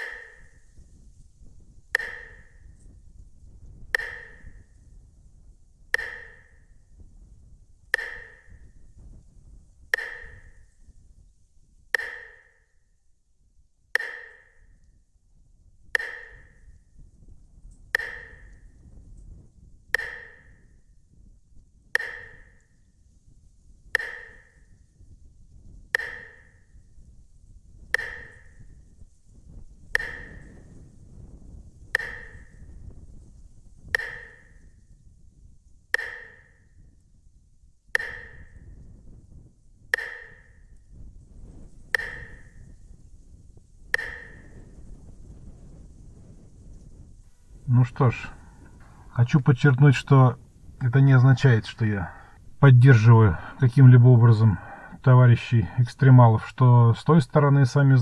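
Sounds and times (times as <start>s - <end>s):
low steady rumble: 0.0s - 58.0s
sharp ringing ping: 42.0s - 42.7s.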